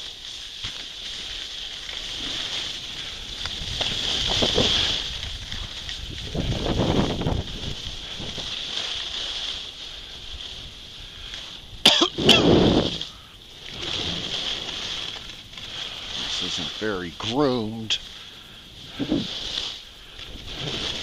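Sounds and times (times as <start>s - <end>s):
skis scraping over snow: 0.0s - 21.0s
wind rushing over microphone: 2.0s - 21.0s.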